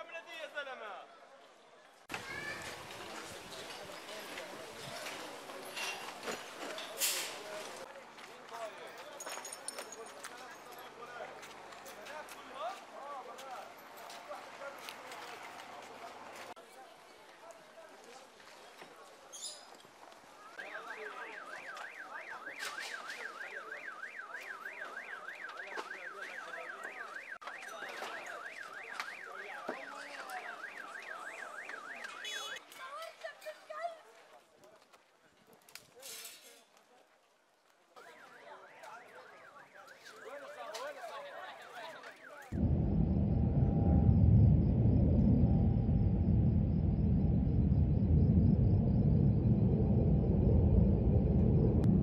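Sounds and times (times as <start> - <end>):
people talking and calling out: 2.1 - 15.2
background commotion: 42.6 - 52.0.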